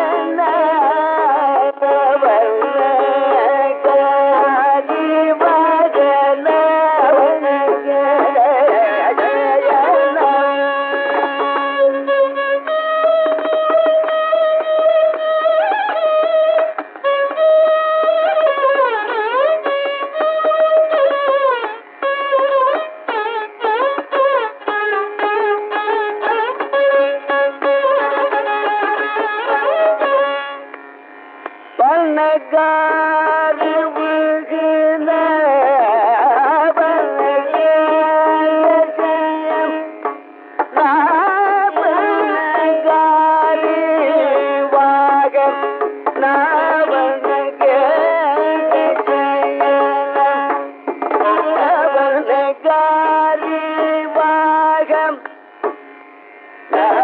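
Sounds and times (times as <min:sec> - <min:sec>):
hand drum strokes: 0:36.6 - 0:57.0.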